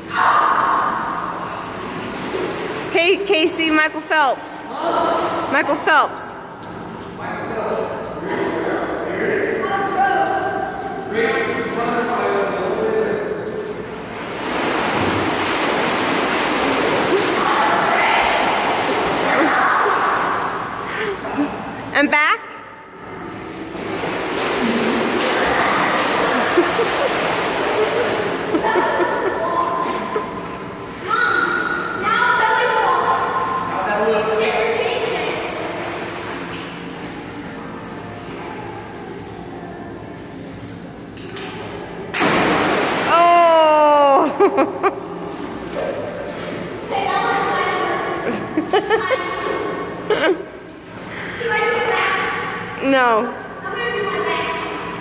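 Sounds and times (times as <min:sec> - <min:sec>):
swimming pool water splashing: 0:00.0 - 0:55.0
swimmer splashing in pool: 0:00.6 - 0:06.0, 0:14.0 - 0:21.8, 0:23.4 - 0:31.9, 0:42.1 - 0:44.5.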